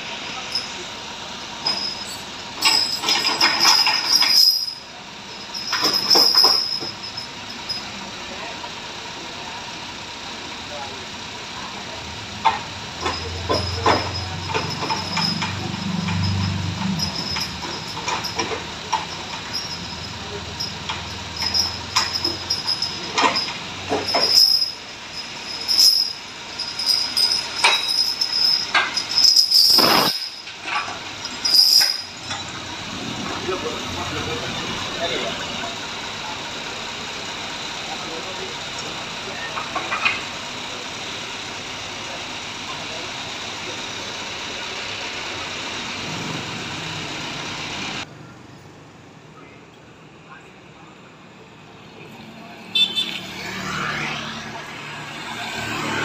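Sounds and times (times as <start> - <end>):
engine running: 0.0 - 56.0
metal chains clanking and knocking: 0.4 - 8.6, 12.3 - 36.4, 39.3 - 40.5.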